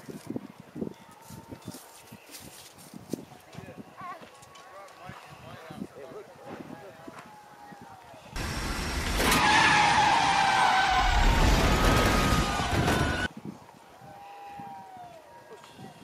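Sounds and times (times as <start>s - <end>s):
heavy rushing roar: 8.4s - 13.3s
high drawn-out shrieks: 8.4s - 13.3s.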